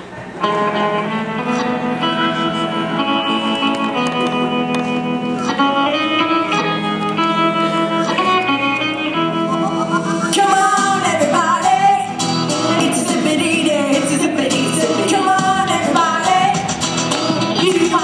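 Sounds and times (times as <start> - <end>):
guitar chords: 0.4 - 18.0.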